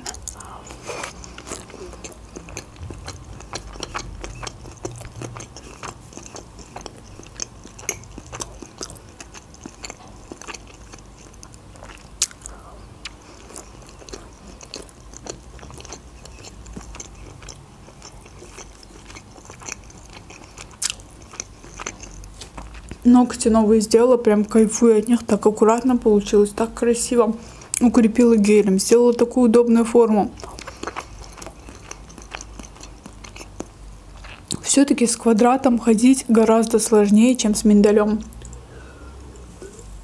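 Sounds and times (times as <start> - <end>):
person chewing food: 0.0 - 23.1, 30.3 - 34.6.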